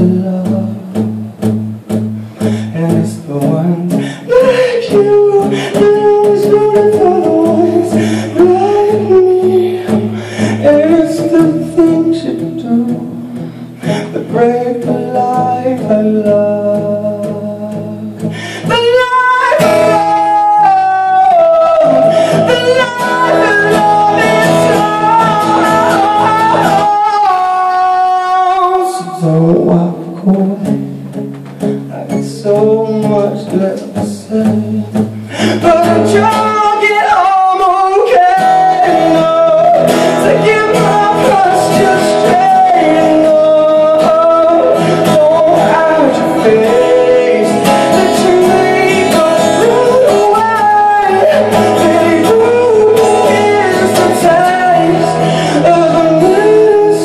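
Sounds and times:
acoustic guitar: 0.0 - 57.0
man singing: 0.0 - 57.0.

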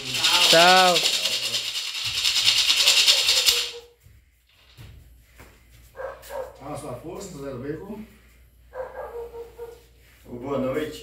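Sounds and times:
gourd rattle shaken rapidly: 0.0 - 4.8.

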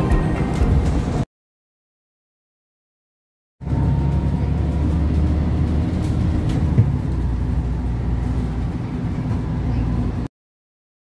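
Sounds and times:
vehicle rumble from on board: 3.6 - 10.3.

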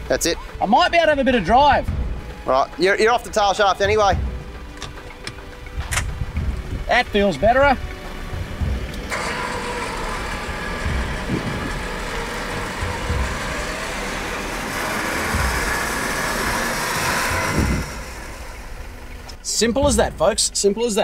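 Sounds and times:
low thuds: 0.0 - 20.6
diesel engine running under load: 3.8 - 20.0.

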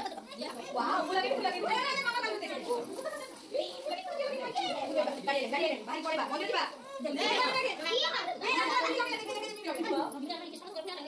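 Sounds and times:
children talking and playing: 0.0 - 11.0.

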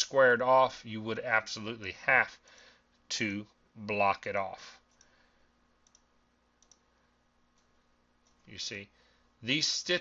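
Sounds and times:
computer mouse clicks: 5.8 - 6.9.

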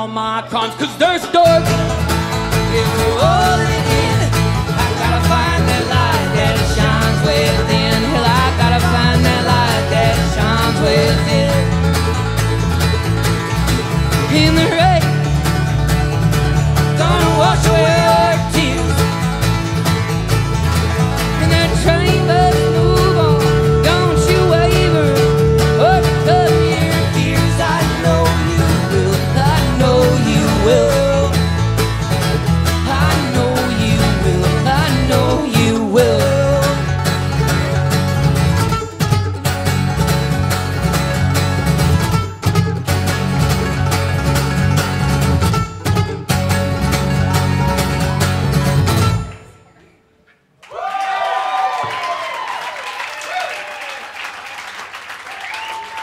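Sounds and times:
acoustic guitar: 0.0 - 50.4
mandolin: 0.0 - 50.4
bass line: 1.2 - 49.6.

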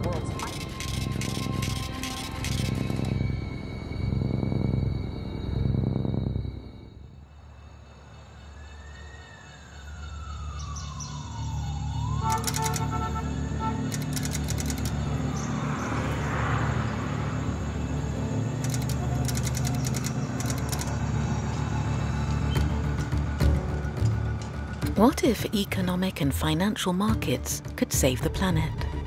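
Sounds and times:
siren wailing: 0.1 - 7.3, 8.4 - 16.4.

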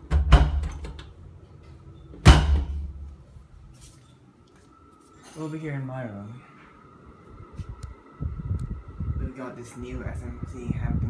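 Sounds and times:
door shutting with a thud: 0.1 - 1.0, 2.2 - 3.0
low rumble: 7.3 - 11.0.

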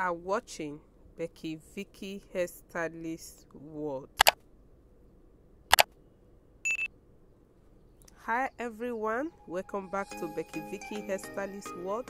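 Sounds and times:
short high beep: 6.7 - 6.9.

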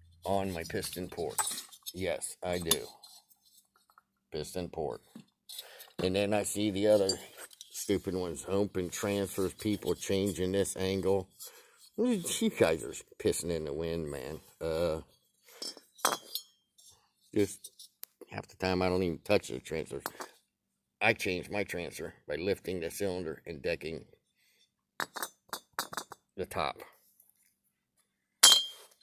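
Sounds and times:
metal parts clinking: 0.8 - 3.6, 6.7 - 8.0, 15.5 - 16.5.

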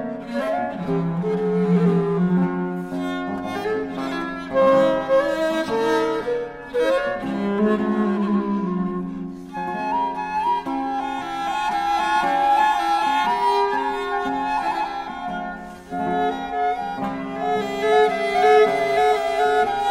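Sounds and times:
bowed viola da gamba: 0.0 - 19.9
plucked theorbo: 0.0 - 19.9
transverse flute: 0.0 - 19.9.

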